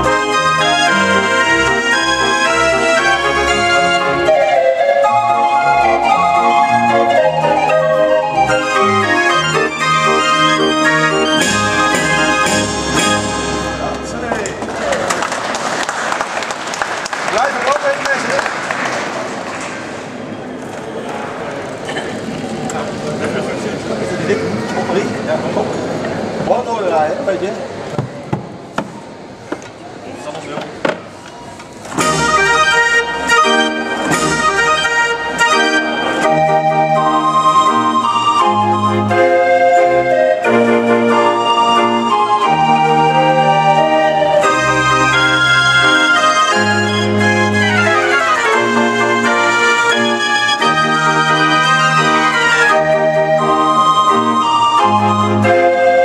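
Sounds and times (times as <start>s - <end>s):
street organ playing: 0.0s - 18.2s, 31.1s - 56.0s
organ drum strokes: 7.8s - 15.0s, 31.9s - 42.6s
audience applauding: 14.1s - 20.0s.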